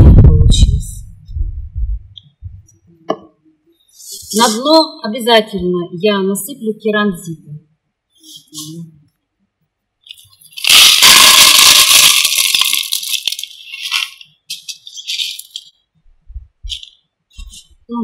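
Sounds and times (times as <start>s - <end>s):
clay pebbles rattling into plastic pot: 10.1s - 15.7s
pebbles clicking: 10.1s - 15.7s.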